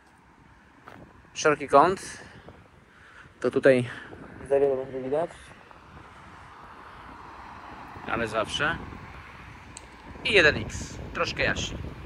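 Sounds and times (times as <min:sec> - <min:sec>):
car driving past: 0:05.0 - 0:10.3.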